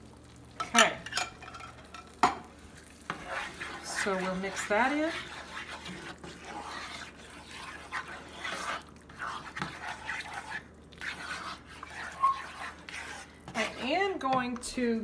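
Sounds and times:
spatula stirring wet food: 0.0s - 15.0s
spatula scraping pan: 1.0s - 15.0s.

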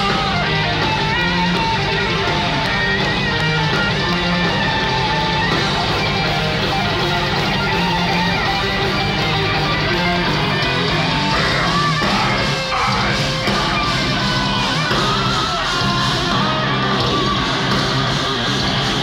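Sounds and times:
death metal band playing: 0.0s - 19.0s.

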